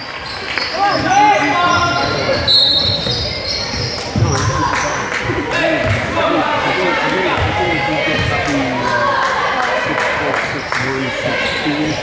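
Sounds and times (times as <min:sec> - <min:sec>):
spectators' voices: 0:00.0 - 0:12.0
basketball dribbling on hardwood: 0:05.8 - 0:06.1.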